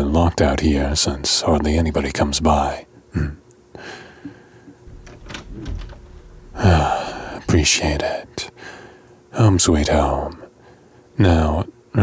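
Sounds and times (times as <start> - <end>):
door opening: 4.8 - 8.4
sharp door clicks: 4.9 - 8.1.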